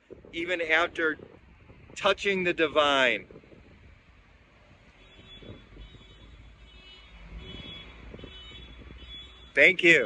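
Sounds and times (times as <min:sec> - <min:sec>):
faint city traffic rumble: 0:00.0 - 0:10.0.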